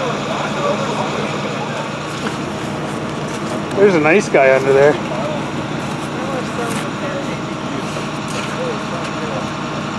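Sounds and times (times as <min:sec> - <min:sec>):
faint voices talking: 0:00.0 - 0:09.9
vehicle engine idling: 0:00.0 - 0:09.9.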